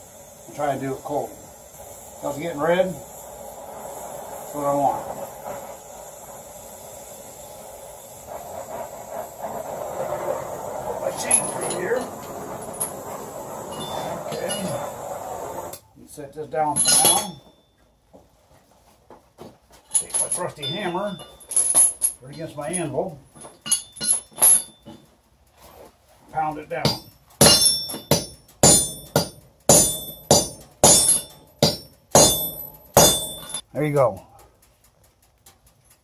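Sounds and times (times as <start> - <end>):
cutting torch flame hissing: 0.0 - 16.0, 26.3 - 33.6
steel striking anvil clinks: 13.7 - 14.8, 16.8 - 17.6, 19.9 - 22.8, 23.4 - 25.1, 26.8 - 33.6.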